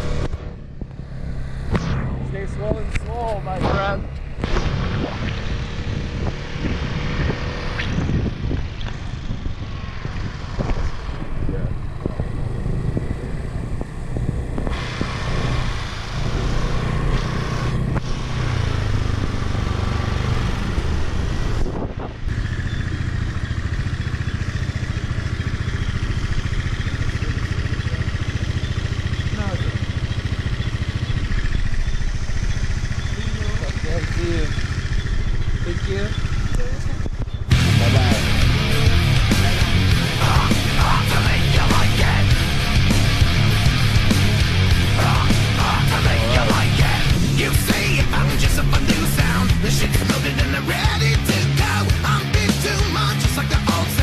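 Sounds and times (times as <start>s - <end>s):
wind rushing over microphone: 0.5s - 17.1s, 17.7s - 22.4s
muffled voices: 1.8s - 4.2s, 33.1s - 34.7s, 35.5s - 42.5s, 45.0s - 50.8s
scooter engine running: 5.4s - 54.0s.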